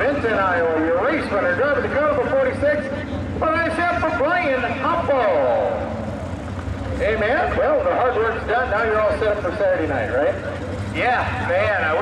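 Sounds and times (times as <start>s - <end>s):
vehicle engines rumbling: 0.0s - 12.0s.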